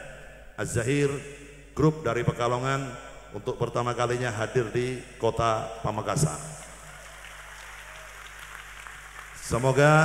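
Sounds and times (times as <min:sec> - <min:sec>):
audience applauding: 0:06.9 - 0:10.0.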